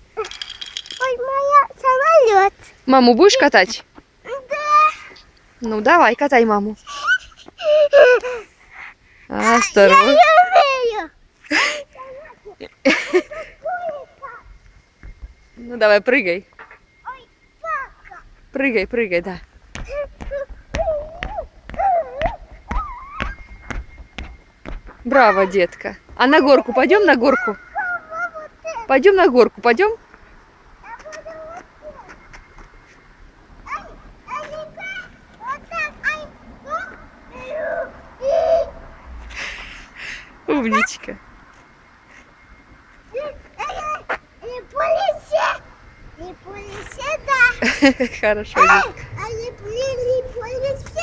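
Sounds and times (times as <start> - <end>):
child's high-pitched vocal sounds: 4.3 - 5.2, 9.3 - 12.6, 19.8 - 23.4, 27.2 - 29.0, 30.8 - 32.2, 33.6 - 38.8.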